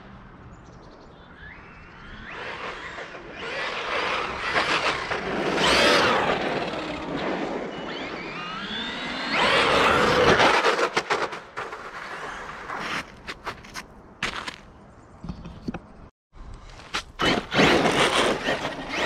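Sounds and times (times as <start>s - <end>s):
rc truck motor whining: 1.4s - 10.4s, 17.2s - 19.0s.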